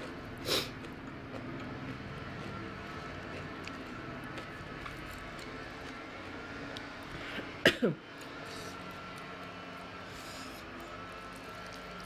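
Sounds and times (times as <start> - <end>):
steady background noise: 0.0 - 12.0
woman clearing her throat: 7.6 - 8.0.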